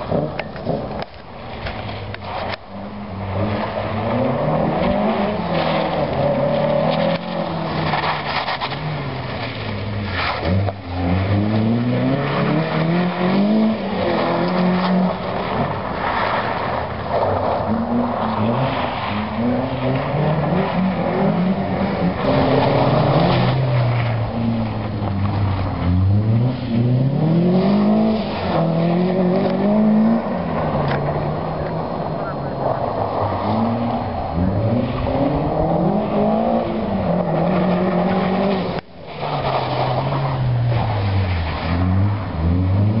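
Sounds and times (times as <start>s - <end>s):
car engine revving: 0.0s - 43.0s.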